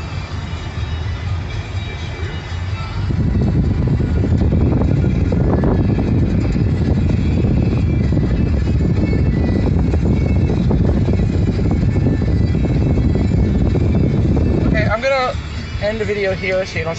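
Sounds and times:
car road and engine rumble: 0.0s - 16.9s
man talking: 14.7s - 16.9s.

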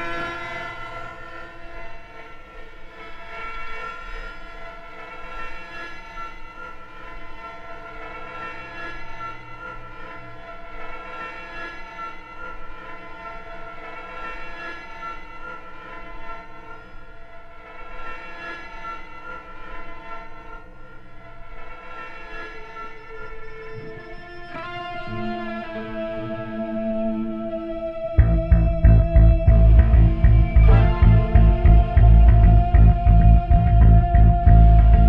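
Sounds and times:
synthesizer drone: 23.0s - 35.0s.

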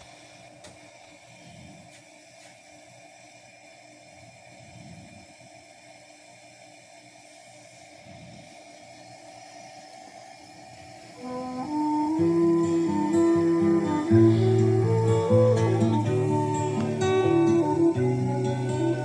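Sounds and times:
faint hum: 0.0s - 19.0s
tape hiss: 0.0s - 19.0s.

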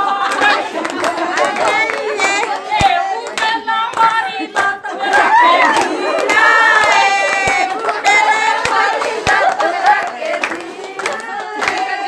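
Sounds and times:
women singing folk song: 0.0s - 12.0s
hands clapping: 0.2s - 12.0s.

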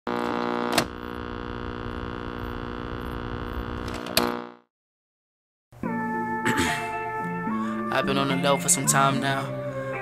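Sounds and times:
electrical hum: 0.1s - 4.6s.

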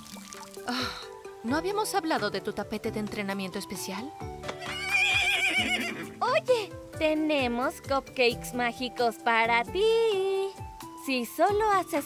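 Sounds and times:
soft background music: 0.0s - 12.0s
cartoon unicorn whinnying: 4.6s - 6.0s.

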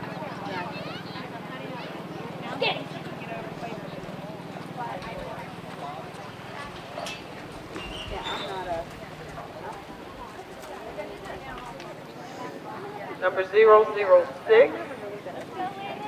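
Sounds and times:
people chatting: 0.0s - 16.0s
horse hoofbeats: 4.0s - 12.1s.

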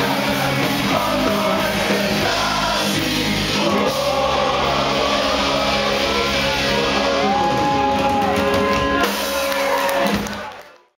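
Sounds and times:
live ska-punk band: 0.0s - 10.4s.

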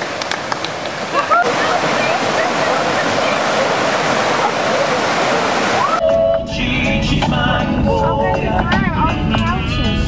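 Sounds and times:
water rushing over rocks: 0.0s - 6.0s
faint voices: 1.2s - 6.0s.

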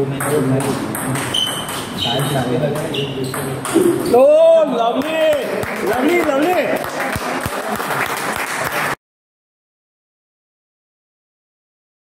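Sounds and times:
applause: 5.0s - 9.0s.

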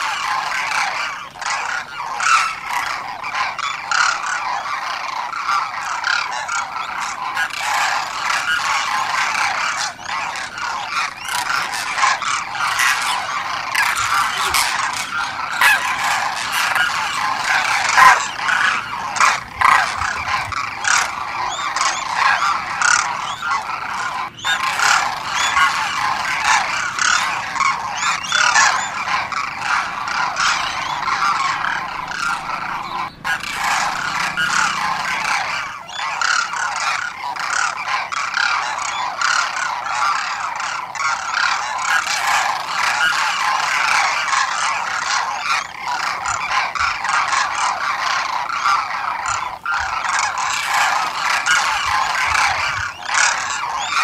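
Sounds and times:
flock of cranes calling: 0.0s - 54.0s.

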